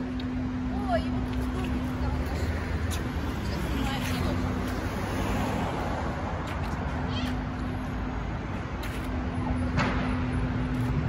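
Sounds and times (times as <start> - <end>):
traffic rumble and hum: 0.0 - 11.0.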